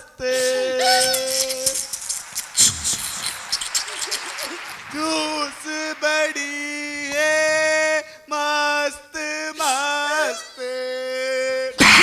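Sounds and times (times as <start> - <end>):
man singing long note: 0.0 - 1.8, 5.0 - 11.8
scattered claps: 1.4 - 7.9
audience laughter: 2.6 - 6.0.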